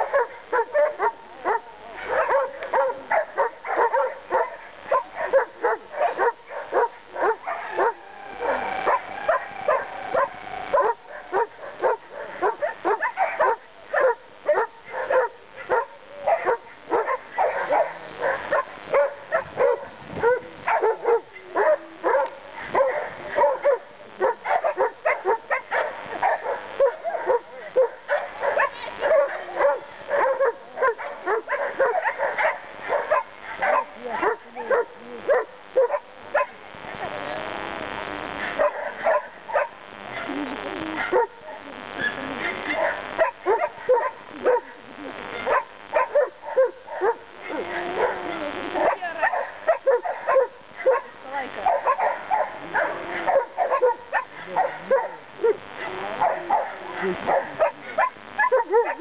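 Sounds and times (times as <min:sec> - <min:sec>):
dog barking rapidly: 0:00.0 - 0:36.6, 0:38.4 - 0:41.4, 0:42.0 - 0:44.7, 0:45.3 - 0:47.3, 0:48.0 - 0:59.0.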